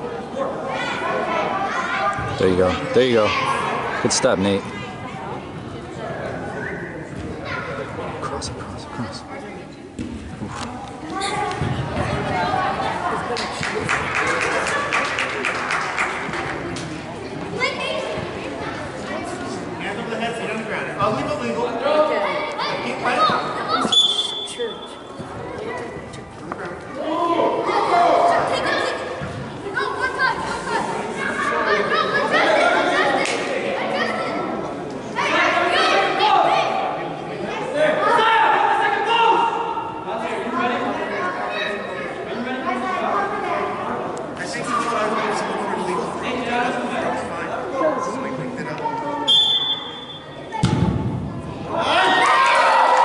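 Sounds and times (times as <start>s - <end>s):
referee's whistle blast: 23.9s - 24.8s, 49.3s - 50.4s
players and spectators shouting: 26.9s - 34.5s, 37.6s - 42.0s, 51.5s - 53.0s.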